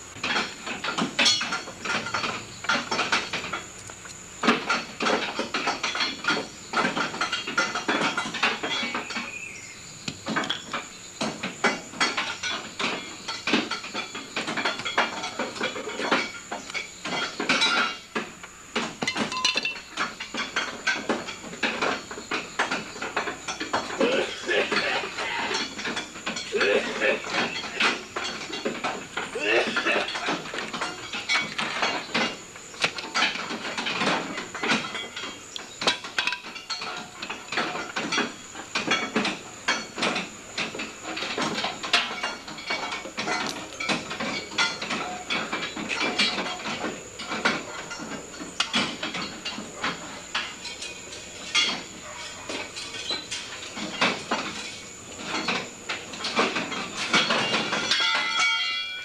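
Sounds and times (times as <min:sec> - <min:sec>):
hand tools clanking on metal: 0:00.1 - 0:59.0.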